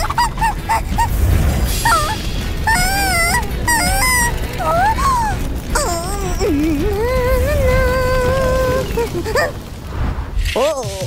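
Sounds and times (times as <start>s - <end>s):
low rumble: 0.0s - 10.6s
cartoon character long cry: 1.8s - 9.6s.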